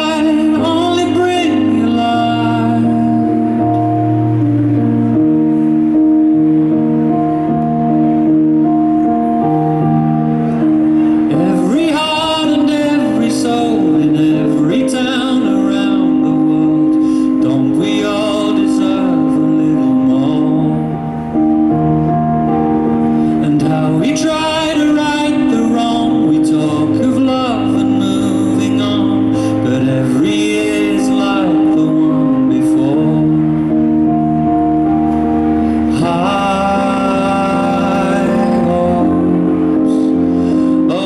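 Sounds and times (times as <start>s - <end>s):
electric keyboard playing chords: 0.0s - 41.0s
person singing a melody: 0.0s - 41.0s.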